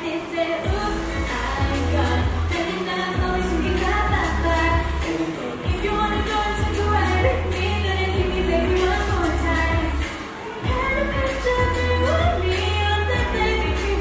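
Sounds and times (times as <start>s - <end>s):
girl singing into microphone: 0.0s - 14.0s
pop backing track with bass and drums: 0.7s - 14.0s.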